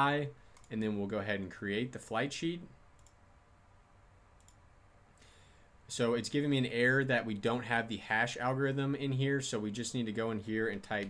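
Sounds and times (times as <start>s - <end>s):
computer mouse clicks: 3.0s - 3.2s, 4.4s - 4.6s.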